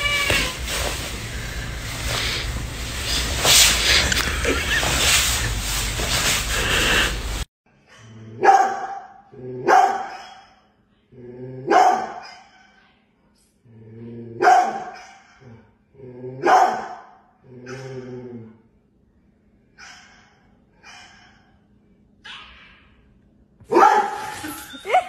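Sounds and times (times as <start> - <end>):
noisy rustling: 0.0 - 7.5
large dog barking: 11.7 - 12.2, 14.4 - 15.3, 16.4 - 17.0.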